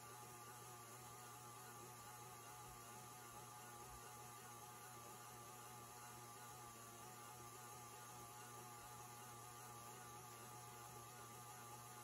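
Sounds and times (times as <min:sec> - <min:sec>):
stand mixer motor hum: 0:00.0 - 0:12.0.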